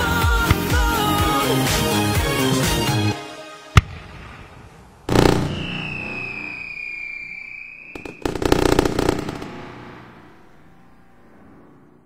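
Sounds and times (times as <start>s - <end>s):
firework crackling: 3.8s - 12.0s
firework whistle: 5.1s - 12.0s.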